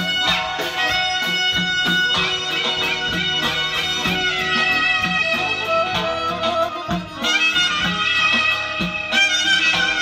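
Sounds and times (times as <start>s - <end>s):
reedy wind instrument melody: 0.0s - 10.0s
steady drum beat: 0.0s - 10.0s.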